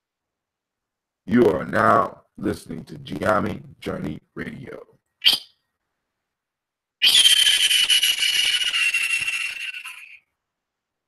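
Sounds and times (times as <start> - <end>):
hissing whistle-like tone: 5.2 - 5.6, 7.0 - 10.2.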